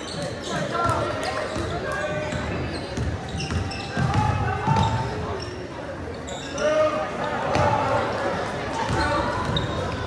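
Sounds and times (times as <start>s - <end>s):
spectators' voices and calls: 0.0s - 10.0s.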